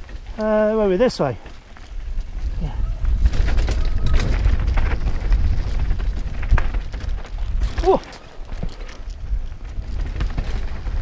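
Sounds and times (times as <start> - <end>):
bike clicks and clatter: 0.0 - 11.0
bike tyre noise: 0.0 - 11.0
wind buffeting microphone: 0.0 - 11.0.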